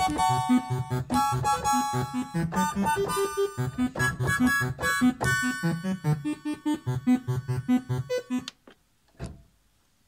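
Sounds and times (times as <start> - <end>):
synthesizer repeated notes: 0.0 - 8.5.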